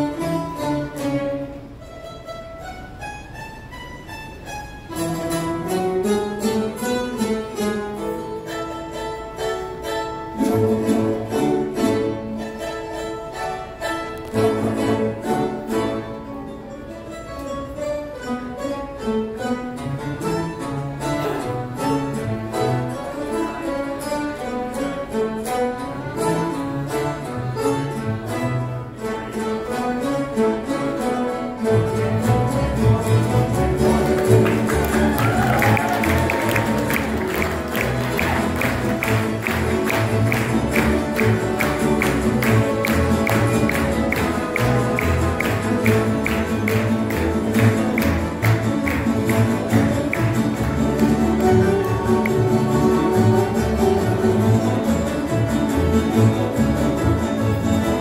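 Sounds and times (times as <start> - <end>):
plucked string ensemble: 0.0 - 58.0
string bass: 0.0 - 58.0.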